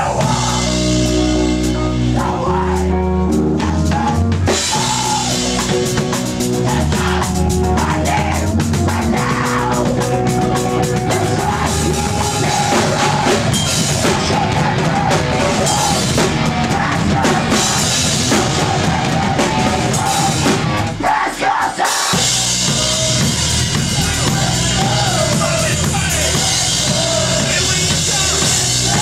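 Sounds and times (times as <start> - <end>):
drum kit: 0.0 - 29.0
rock band playing: 0.0 - 29.0.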